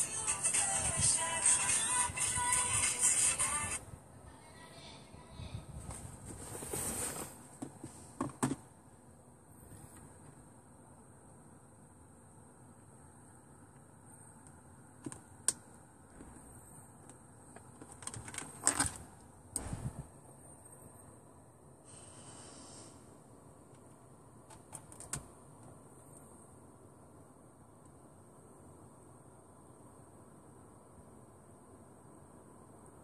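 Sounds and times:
clicks and knocks handling phone: 0:07.6 - 0:08.6
faint high-pitched hiss: 0:18.7 - 0:24.5.

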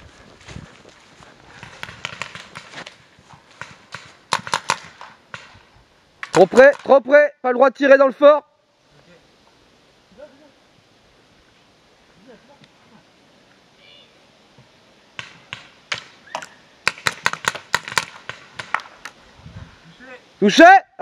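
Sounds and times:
paintball markers firing: 0:01.6 - 0:03.0, 0:03.6 - 0:05.5, 0:16.9 - 0:18.9.

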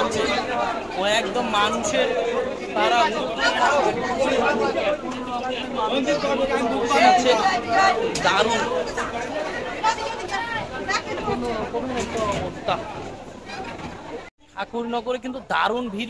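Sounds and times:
passengers chattering: 0:00.0 - 0:16.0.

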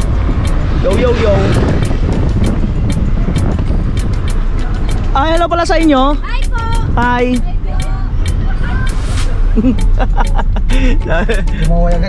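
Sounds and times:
music with ticking beat: 0:00.0 - 0:12.0
road and wind rumble: 0:00.0 - 0:12.0.

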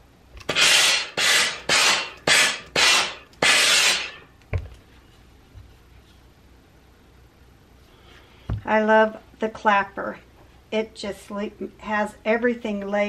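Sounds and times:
steam iron hissing bursts: 0:00.5 - 0:04.2.

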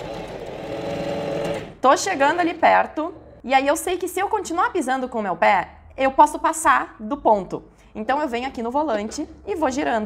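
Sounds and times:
sewing machine humming: 0:00.0 - 0:01.8.

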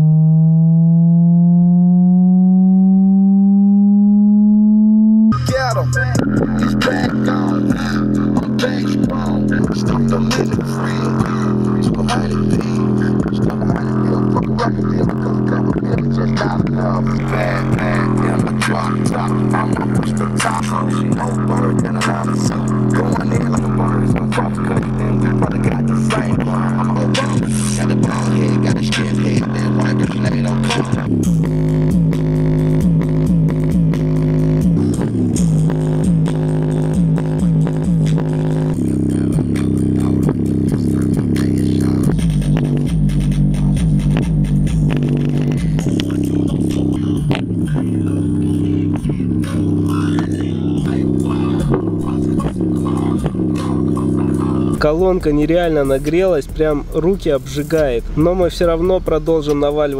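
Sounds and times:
bass-heavy music through speaker: 0:00.0 - 0:59.9.

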